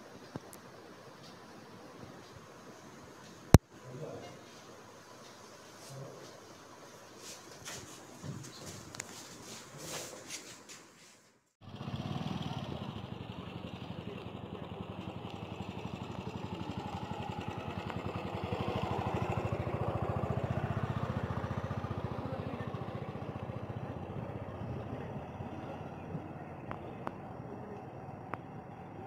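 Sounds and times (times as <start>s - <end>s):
vehicle engine passing by: 11.6s - 29.0s.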